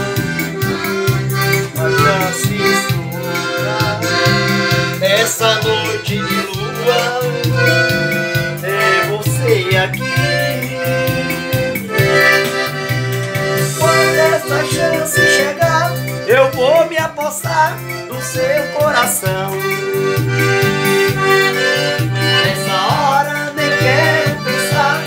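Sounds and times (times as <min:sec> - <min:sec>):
electronic keyboard accompaniment: 0:00.0 - 0:25.0
piano accordion melody: 0:00.0 - 0:25.0.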